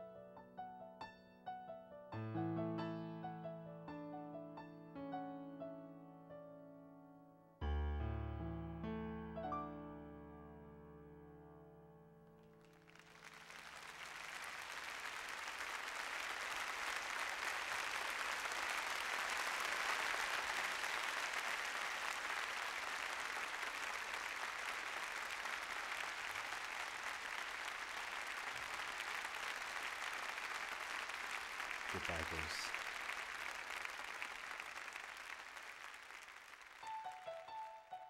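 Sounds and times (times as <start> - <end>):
piano notes: 0.0 - 12.6
audience applause: 12.6 - 37.9.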